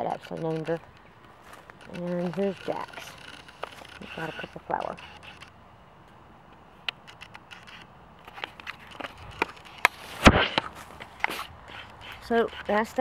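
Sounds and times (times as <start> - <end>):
camera handling clicks and knocks: 0.2 - 12.7
fabric rubbing on microphone: 1.6 - 5.5, 8.7 - 13.0.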